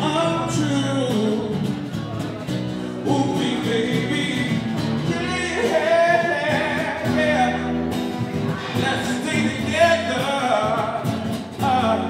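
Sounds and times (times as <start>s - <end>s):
instrumental backing: 0.0s - 12.0s
man singing into a microphone: 0.0s - 12.0s.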